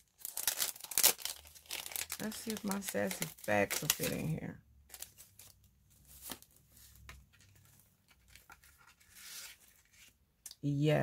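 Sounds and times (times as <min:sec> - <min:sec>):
paper card rustling and clicking: 0:04.9 - 0:10.1.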